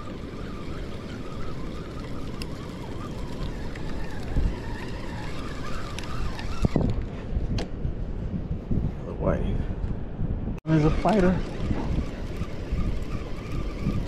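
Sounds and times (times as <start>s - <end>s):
fishing reel whirring: 0.0s - 7.0s, 10.7s - 14.0s
wind buffeting microphone: 0.0s - 14.0s.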